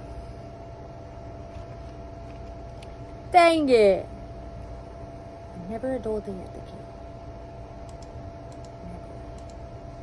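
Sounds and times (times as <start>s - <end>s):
low background hum and rumble: 0.0s - 10.0s.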